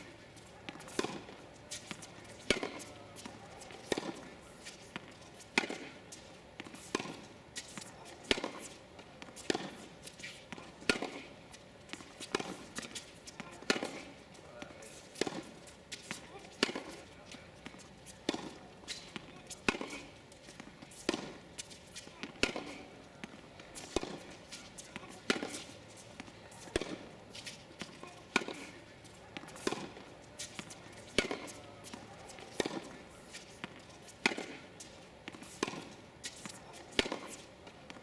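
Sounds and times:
racket hitting tennis ball: 0.0 - 38.0
ball bouncing on hard court: 30.5 - 33.0, 35.4 - 37.4.

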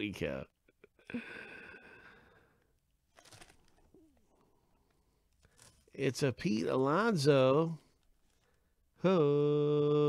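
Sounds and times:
plastic sleeve crinkling: 3.0 - 6.0, 7.6 - 8.8
short plastic crackles: 3.0 - 6.0.

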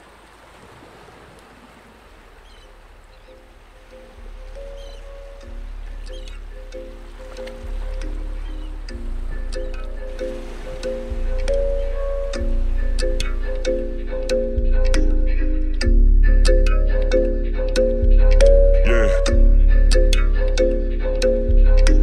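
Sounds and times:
soft steady hiss: 0.0 - 14.2
crisp percussion ticks: 3.9 - 22.0
repeating mid-pitched chords: 4.1 - 22.0
deep bass: 11.1 - 22.0.

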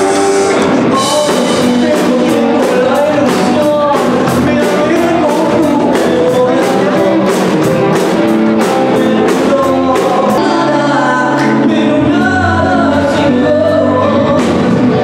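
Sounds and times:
drum kit: 0.0 - 15.0
electric guitars: 0.0 - 15.0
keyboard: 0.0 - 15.0
man singing: 0.0 - 15.0.

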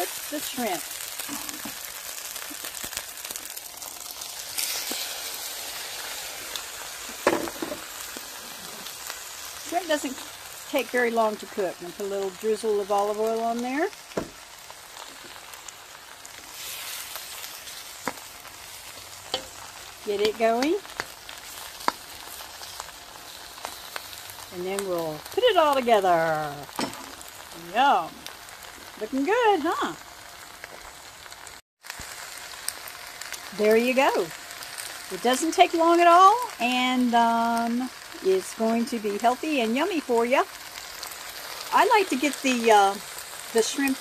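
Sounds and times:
food sizzling in a wok: 0.0 - 44.0.

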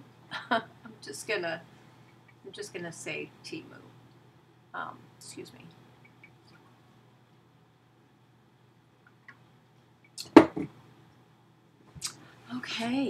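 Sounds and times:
faint steady hum: 0.0 - 13.0
plastic tumbler knocking on desk: 10.4 - 10.7.

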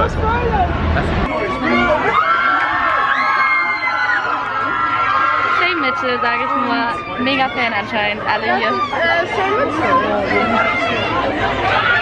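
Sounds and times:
crowd screaming and cheering: 1.3 - 12.0.

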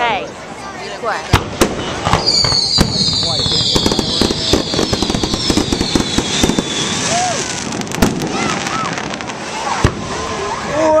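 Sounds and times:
crowd voices: 0.0 - 11.0
firework crackling: 1.2 - 11.0
firework shell bang: 1.3 - 6.8.

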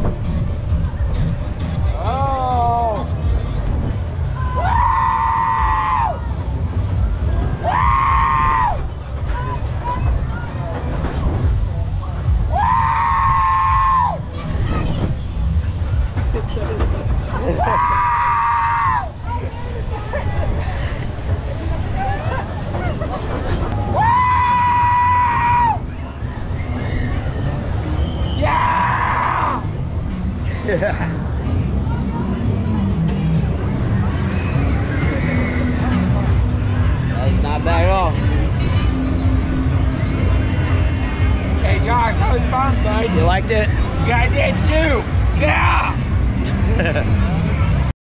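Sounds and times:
riders screaming: 4.4 - 6.2, 7.6 - 8.8, 12.5 - 14.2, 17.5 - 19.1, 23.9 - 25.8, 26.7 - 29.6.

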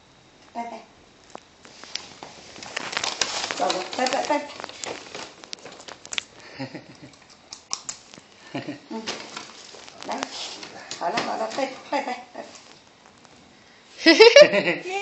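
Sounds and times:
wrapper crinkling: 1.3 - 13.4
voices: 3.6 - 4.6.

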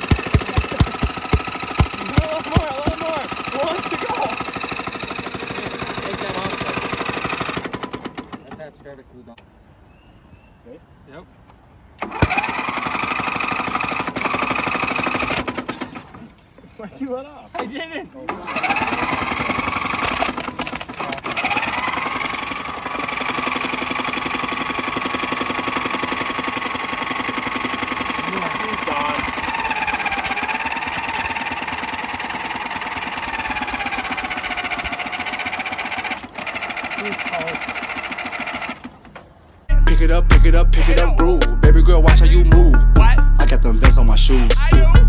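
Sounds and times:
lawn mower engine running: 0.0 - 9.7, 11.9 - 45.0.

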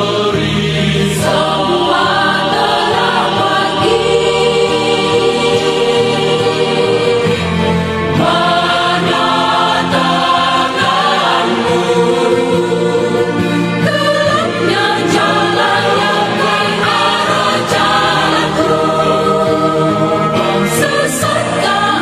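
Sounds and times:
choir singing worship song: 0.0 - 22.0.

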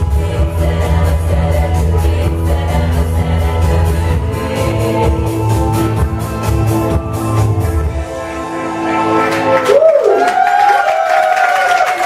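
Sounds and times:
audience applauding and cheering: 8.1 - 12.0.

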